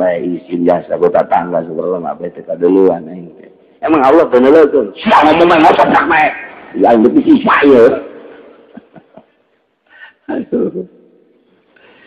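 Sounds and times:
man talking: 0:00.0 - 0:09.0, 0:10.1 - 0:11.0
low background hiss: 0:00.0 - 0:12.0.

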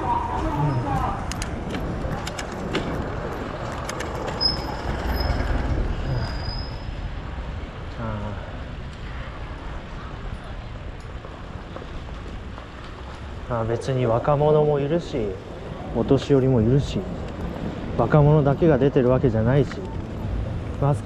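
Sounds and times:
street noise: 0:00.0 - 0:21.0.

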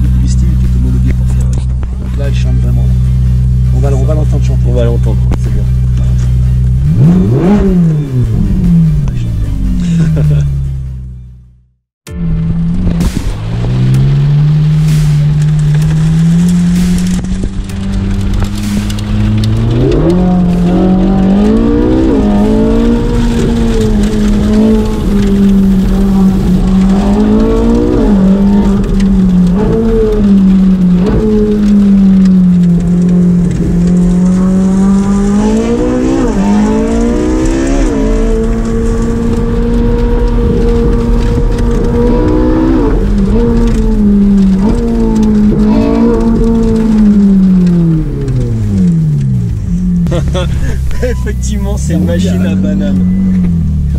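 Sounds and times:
car engine revving from cabin: 0:02.3 - 0:10.7, 0:17.8 - 0:53.9.

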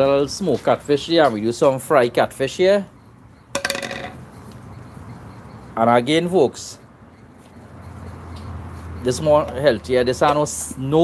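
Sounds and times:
metal bowl clattering on concrete: 0:03.6 - 0:04.2.

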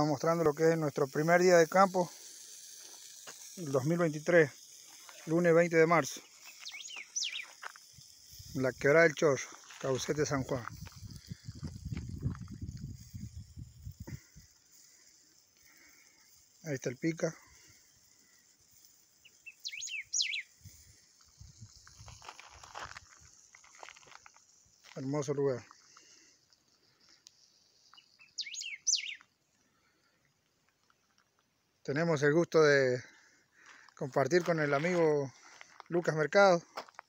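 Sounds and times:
footsteps crunching on gravel: 0:06.1 - 0:08.0, 0:09.2 - 0:12.6, 0:21.0 - 0:26.1, 0:33.6 - 0:37.0
bird calling: 0:06.2 - 0:07.6, 0:19.2 - 0:20.6, 0:27.9 - 0:29.4.

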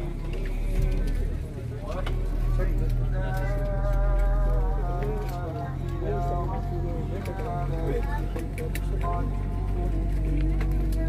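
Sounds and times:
airliner cabin hum: 0:00.0 - 0:11.0
man's melodic recitation: 0:00.0 - 0:11.0.

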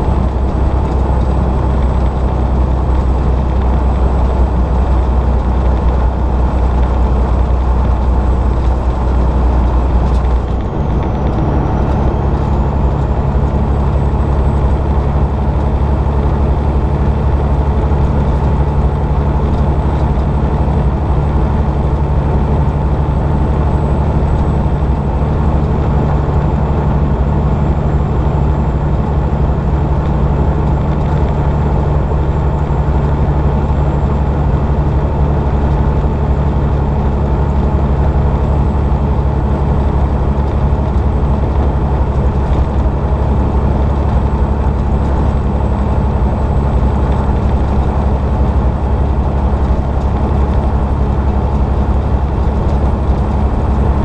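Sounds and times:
diesel engine drone: 0:00.0 - 0:54.0
road noise: 0:00.0 - 0:54.0.

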